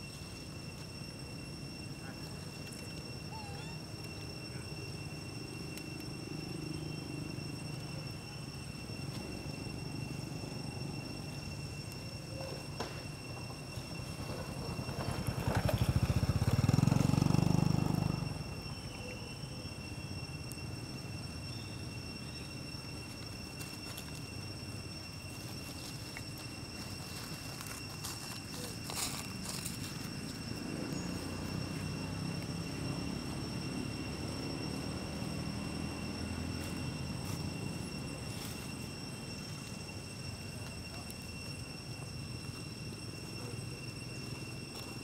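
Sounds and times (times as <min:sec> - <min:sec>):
high-pitched insect drone: 0:00.0 - 0:45.0
vehicle engine rumble passing: 0:14.0 - 0:18.8, 0:28.5 - 0:39.5.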